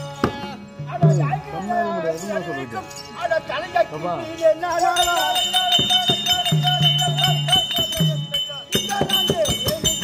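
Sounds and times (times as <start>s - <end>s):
wavering melody line: 2.0s - 10.0s
drum strokes: 5.0s - 10.0s.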